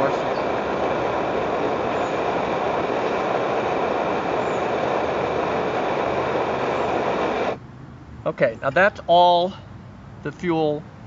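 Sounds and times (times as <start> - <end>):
stove burner roaring: 0.0 - 7.6.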